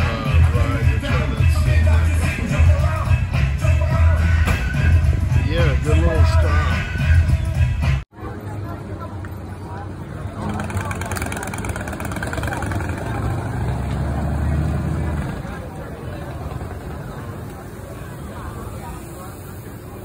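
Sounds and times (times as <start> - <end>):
large vehicle engine rumbling: 0.0 - 20.0
people talking: 5.3 - 6.9, 8.2 - 20.0.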